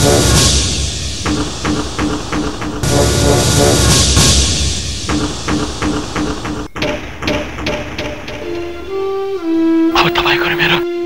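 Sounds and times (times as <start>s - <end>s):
pitched drum beat: 0.0s - 9.0s.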